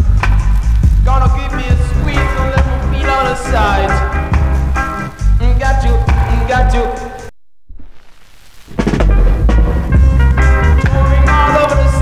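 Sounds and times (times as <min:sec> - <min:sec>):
reggae dub band: 0:00.0 - 0:07.3, 0:08.8 - 0:12.0
hissing wash: 0:00.0 - 0:12.0.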